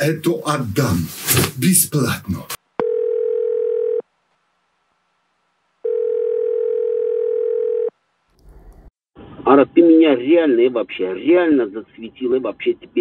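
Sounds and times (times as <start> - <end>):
telephone ringback tone: 2.8 - 4.0, 5.8 - 7.9.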